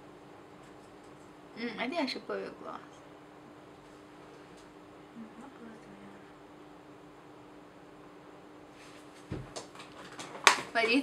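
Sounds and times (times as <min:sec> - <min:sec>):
woman speaking: 0:01.6 - 0:03.0, 0:05.2 - 0:06.3, 0:10.7 - 0:11.0.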